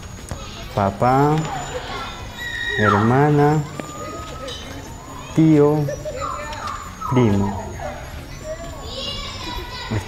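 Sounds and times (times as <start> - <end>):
children playing and calling: 0.0 - 10.0
child's high call: 1.6 - 3.2, 3.8 - 10.0.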